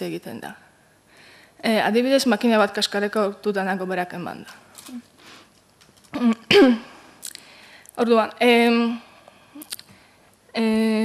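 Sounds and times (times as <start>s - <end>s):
woman clearing her throat: 6.1s - 6.9s.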